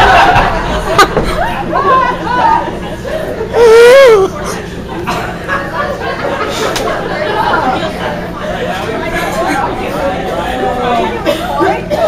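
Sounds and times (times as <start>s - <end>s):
overlapping indistinct chatter: 0.0s - 12.0s.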